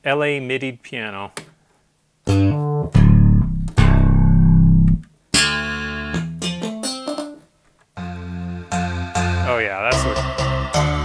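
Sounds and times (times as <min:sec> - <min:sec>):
synthesizer bass notes: 0:02.3 - 0:06.4.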